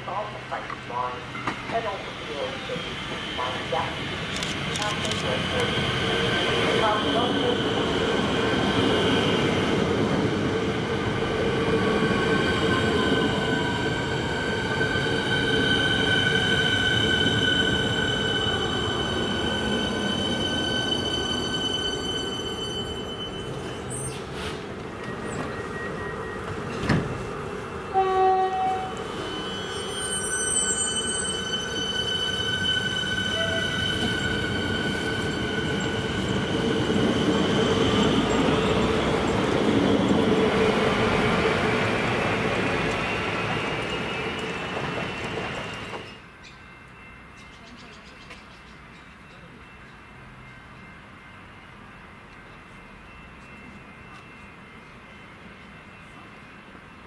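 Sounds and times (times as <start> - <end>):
train electrical whine: 0.0 - 46.3.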